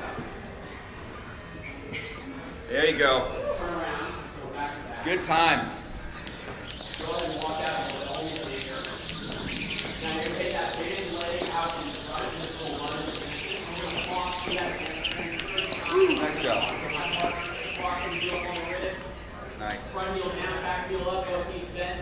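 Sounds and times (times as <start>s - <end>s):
jump ropes ticking on floor: 6.2s - 19.1s.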